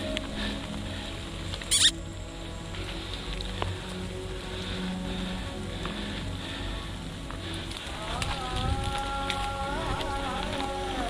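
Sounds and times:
background music: 0.0s - 11.0s
rain pattering on foliage: 0.0s - 11.0s
short high-pitched squeak: 1.7s - 2.0s.

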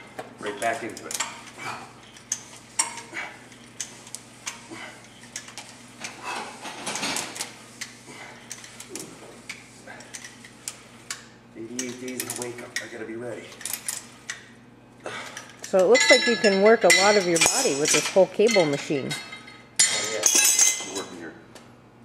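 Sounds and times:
cable machine metallic clinks: 15.7s - 18.9s.

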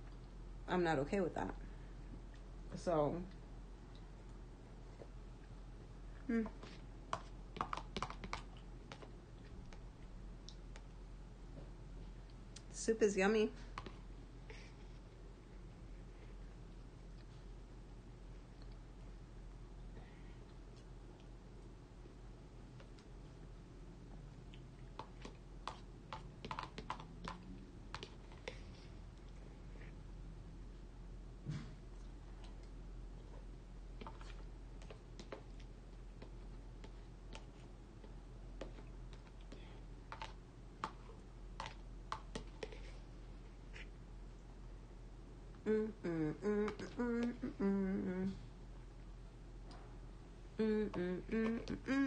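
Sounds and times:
woman humming: 6.2s - 6.7s, 45.6s - 48.5s, 50.6s - 52.0s.

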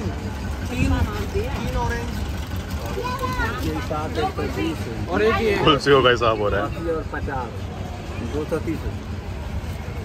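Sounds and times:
auto-rickshaw engine humming: 0.0s - 10.0s
passengers talking: 0.0s - 10.0s.

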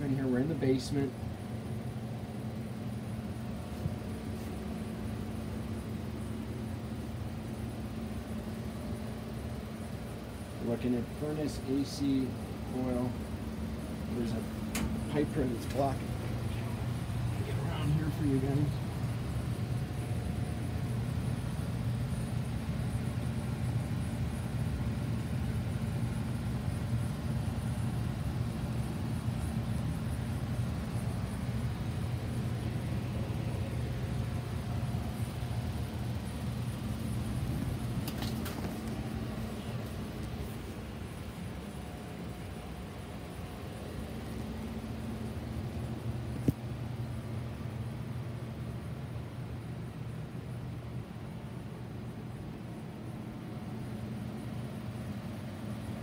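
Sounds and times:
low machine hum: 0.0s - 56.0s
sharp click: 14.7s - 15.0s.

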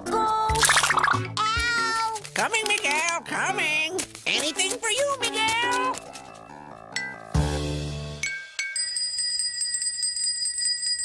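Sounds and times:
small bell rung rapidly: 8.2s - 11.0s.

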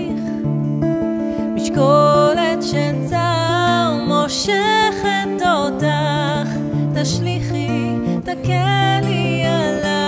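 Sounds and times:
strummed acoustic guitar: 0.0s - 10.0s
woman singing slow melody: 0.0s - 10.0s.

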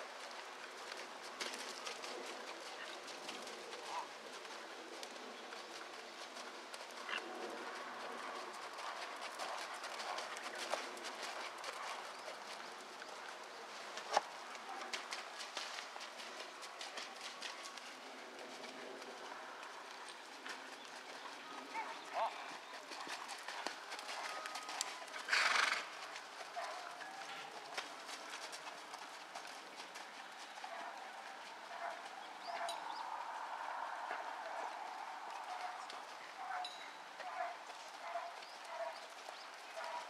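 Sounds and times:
horse hoofbeats on muddy dirt: 0.0s - 40.0s.

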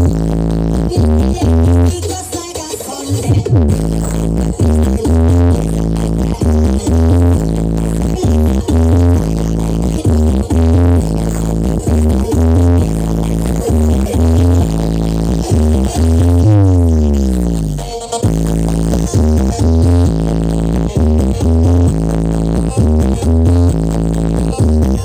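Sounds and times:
loud electronic dance music: 0.0s - 25.0s
bass sweep gliding down: 3.6s - 25.0s.

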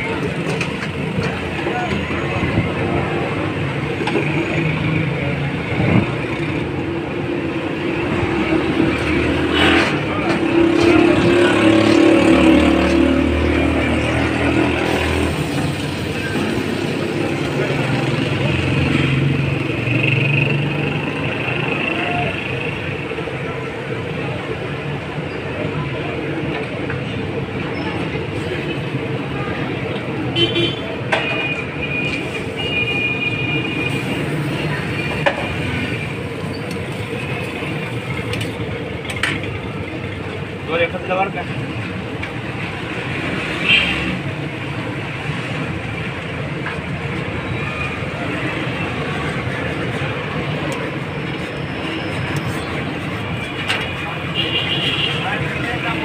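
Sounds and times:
traffic running past: 0.0s - 56.0s
car horns tooting: 30.3s - 34.3s, 54.3s - 55.4s.

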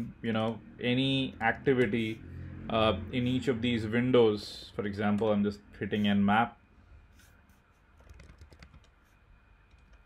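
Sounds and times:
faint keyboard typing: 7.2s - 10.0s.

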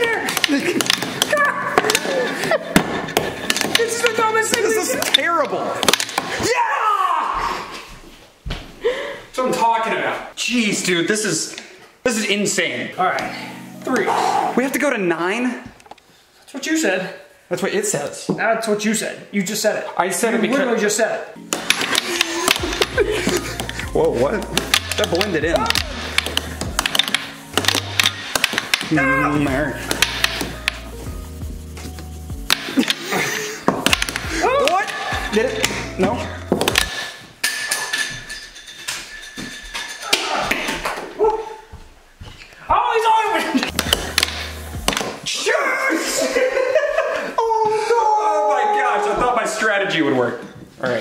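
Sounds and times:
background music: 0.0s - 6.7s, 12.0s - 15.6s, 20.4s - 37.4s, 42.7s - 47.4s
air hockey puck knocking: 21.5s - 29.0s, 29.8s - 30.8s, 33.6s - 35.0s, 43.7s - 45.2s
men shouting: 24.8s - 26.2s, 28.8s - 29.8s, 34.2s - 36.3s.

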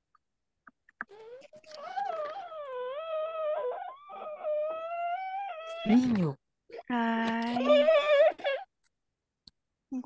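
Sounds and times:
dog howling: 1.8s - 5.9s.

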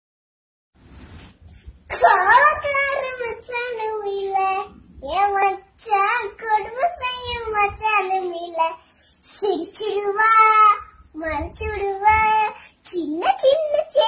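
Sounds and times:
little girl chanting: 1.9s - 14.0s.

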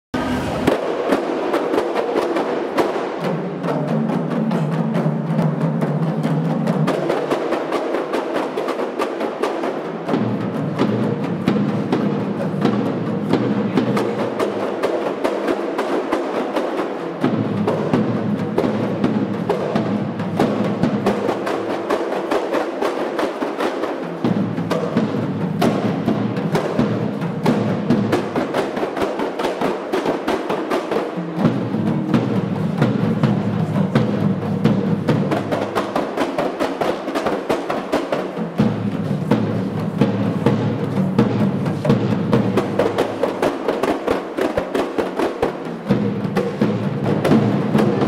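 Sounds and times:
frame drums slapped by hand: 0.6s - 48.0s.

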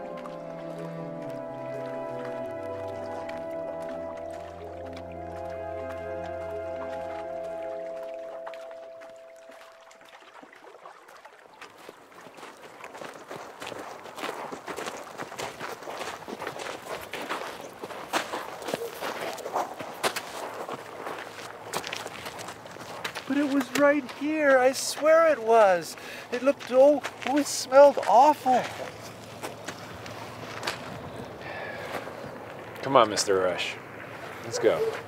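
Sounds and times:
background music: 0.0s - 10.0s
footsteps crunching on shore: 0.0s - 35.0s.

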